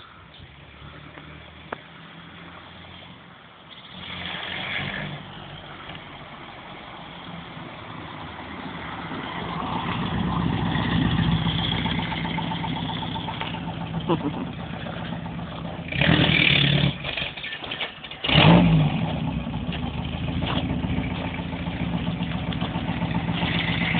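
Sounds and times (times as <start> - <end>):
car engine driving past: 7.9 - 17.4.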